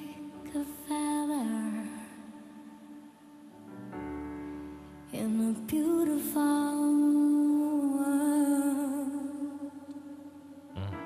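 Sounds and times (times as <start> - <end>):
woman singing slow ballad: 0.0 - 3.5, 5.1 - 10.7.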